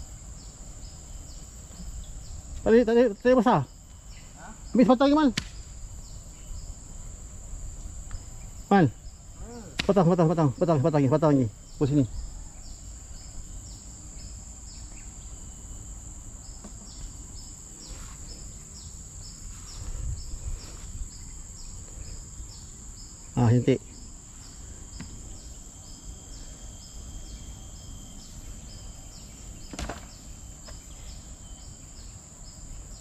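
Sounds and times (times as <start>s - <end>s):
insects droning: 0.0s - 33.0s.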